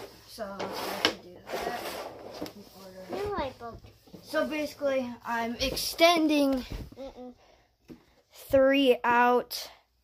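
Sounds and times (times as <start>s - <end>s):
frame scraping and rattling on tiles: 0.0s - 3.5s.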